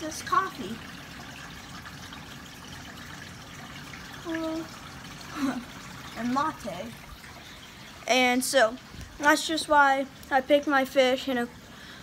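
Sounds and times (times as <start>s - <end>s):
aquarium filter water trickling: 0.0s - 12.0s.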